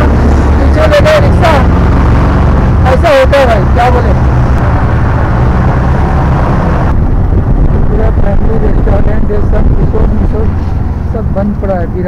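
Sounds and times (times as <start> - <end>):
auto rickshaw engine and road noise: 0.0 - 12.0.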